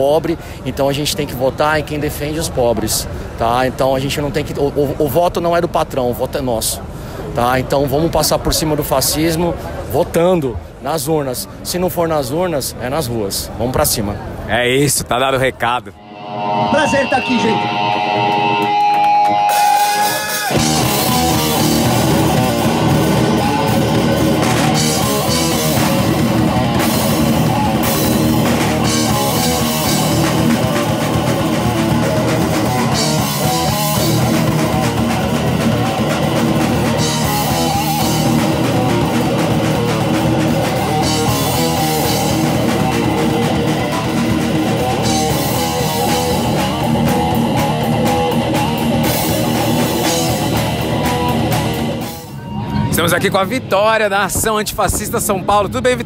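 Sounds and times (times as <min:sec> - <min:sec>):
bass guitar: 0:16.0 - 0:56.0
distorted electric guitars: 0:16.0 - 0:56.0
drum kit: 0:16.1 - 0:52.4.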